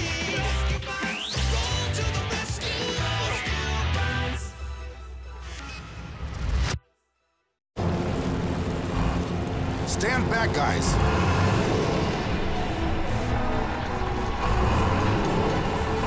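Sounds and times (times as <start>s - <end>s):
dense low rumble of sound effects: 7.8s - 16.0s.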